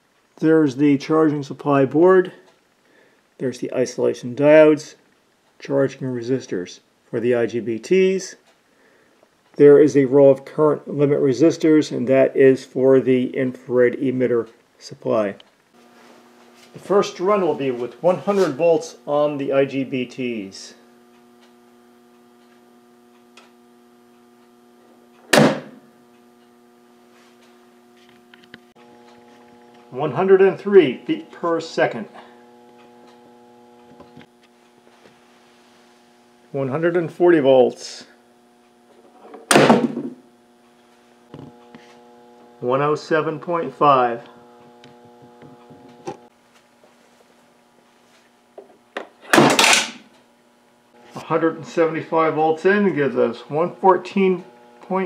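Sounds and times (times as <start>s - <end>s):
electrical hum: 0.0s - 55.0s
coil gun bang: 25.3s - 25.8s, 39.5s - 40.2s, 49.3s - 50.0s.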